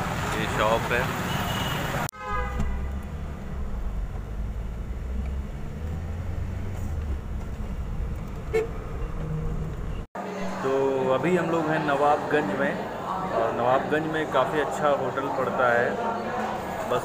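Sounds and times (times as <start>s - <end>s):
street noise: 0.0s - 17.0s
vehicle horn toot: 1.3s - 3.2s, 8.5s - 8.8s
car driving on highway: 2.4s - 10.1s.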